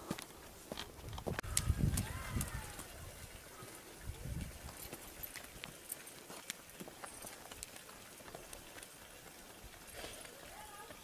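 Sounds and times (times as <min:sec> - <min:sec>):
donkey hooves on stony road: 0:00.0 - 0:11.0.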